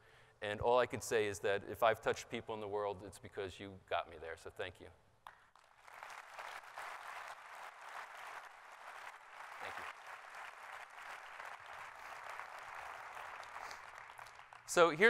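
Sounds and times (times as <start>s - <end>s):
audience applauding: 5.5s - 15.0s.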